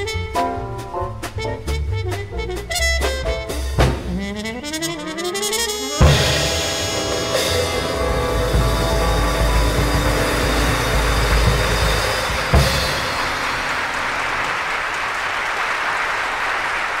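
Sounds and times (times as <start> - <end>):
live jazz band playing: 0.0 - 14.8
audience applause: 7.0 - 17.0.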